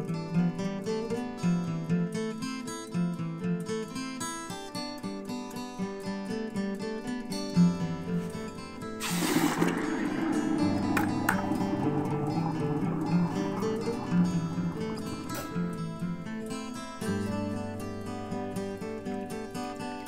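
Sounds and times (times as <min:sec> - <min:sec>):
acoustic guitar music: 0:00.0 - 0:20.0
hot metal hissing and bubbling in water: 0:08.9 - 0:18.7.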